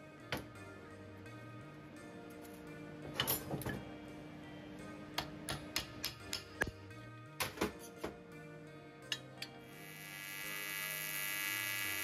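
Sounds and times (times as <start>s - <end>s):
background music: 0.0s - 12.0s
small hammer tapping metal: 5.2s - 6.7s.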